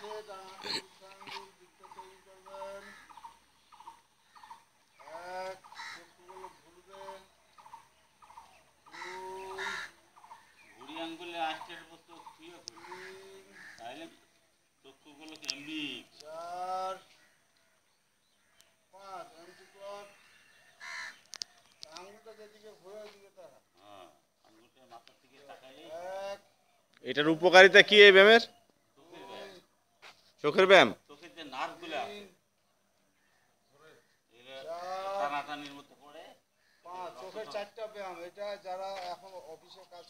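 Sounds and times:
man calling out counts: 0:00.0 - 0:03.2, 0:05.0 - 0:07.4, 0:14.9 - 0:17.2, 0:33.8 - 0:36.2, 0:36.8 - 0:39.9
crow cawing: 0:01.1 - 0:14.2, 0:16.4 - 0:22.5.

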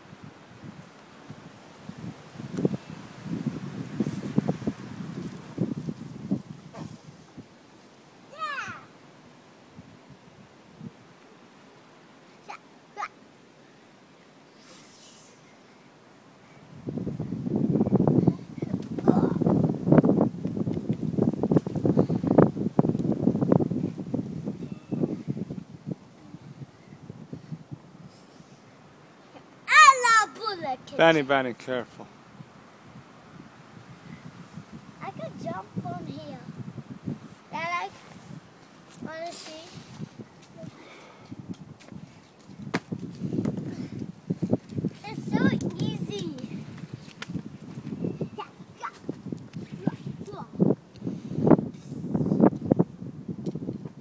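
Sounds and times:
wind buffeting microphone: 0:00.0 - 0:07.6, 0:16.5 - 0:28.6, 0:32.0 - 0:54.0
children climbing on tree: 0:00.0 - 0:31.2, 0:32.1 - 0:54.0.

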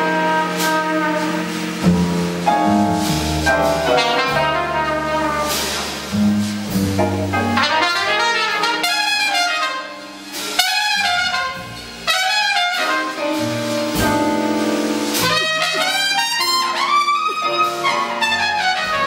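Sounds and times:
jazz band accompaniment: 0:00.0 - 0:19.0
trumpet jazz solo: 0:00.0 - 0:19.0
trumpeter breathing: 0:15.2 - 0:19.0.

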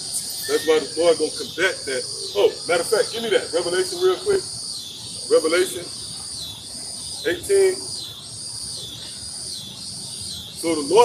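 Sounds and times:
insect chorus chirring: 0:00.0 - 0:11.0.

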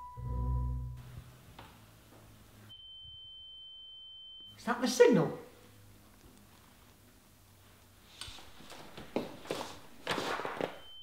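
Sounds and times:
soft scuffs and knocks: 0:08.2 - 0:10.8.

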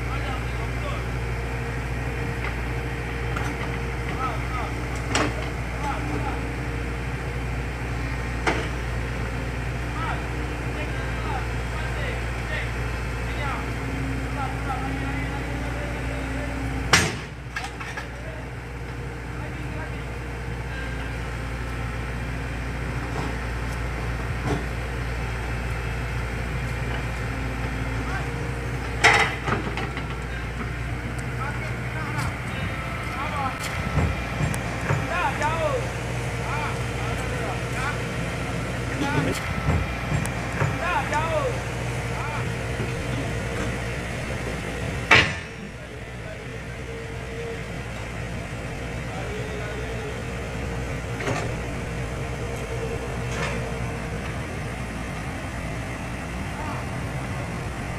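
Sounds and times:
heavy machinery engine rumbling: 0:00.0 - 0:57.9.

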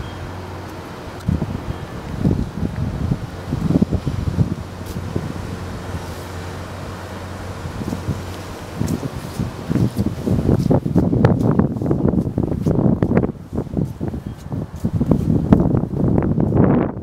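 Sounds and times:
low machine hum: 0:00.0 - 0:11.4
wind buffeting microphone: 0:00.0 - 0:17.0.

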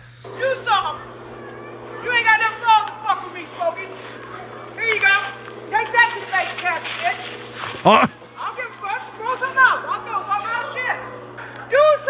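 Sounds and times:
steady low hum: 0:00.0 - 0:12.0
people talking: 0:00.3 - 0:12.0.

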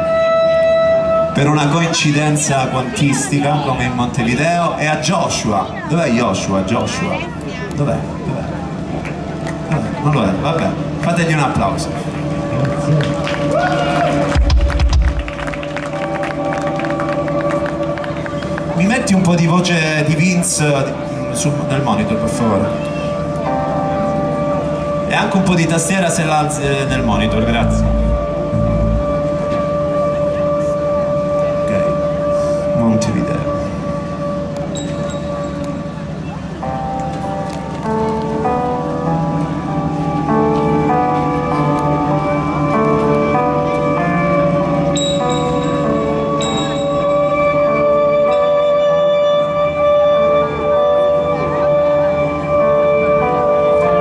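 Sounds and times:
crowd murmur: 0:01.2 - 0:11.1, 0:22.6 - 0:25.1, 0:26.4 - 0:32.8, 0:35.3 - 0:54.0
crowd clapping: 0:12.6 - 0:18.9
synth keyboard chords: 0:22.7 - 0:32.3, 0:35.3 - 0:54.0
deep bass note: 0:26.6 - 0:29.8
held synth tones: 0:26.6 - 0:29.9.

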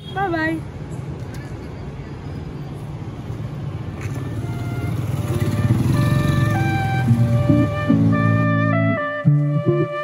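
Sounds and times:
low street traffic rumble: 0:00.0 - 0:10.0
background music: 0:05.6 - 0:10.0.

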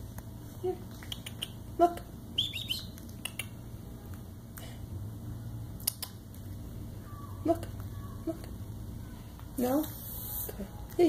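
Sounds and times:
high downward-sliding chirps: 0:02.4 - 0:03.0.

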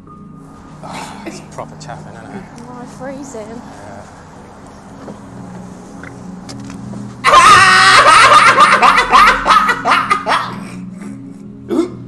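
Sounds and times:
man laughing loudly: 0:07.3 - 0:10.9.

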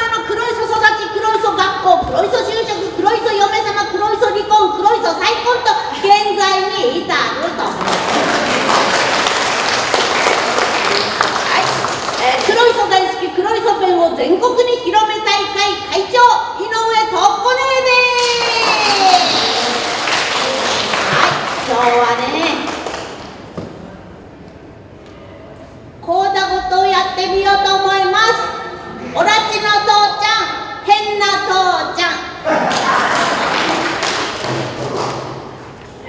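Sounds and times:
broad rush of noise: 0:00.1 - 0:14.2, 0:17.5 - 0:30.9, 0:31.9 - 0:36.0.

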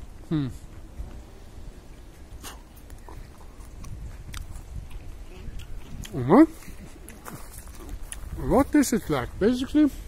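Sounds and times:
crunchy fruit chewing: 0:00.2 - 0:09.8.

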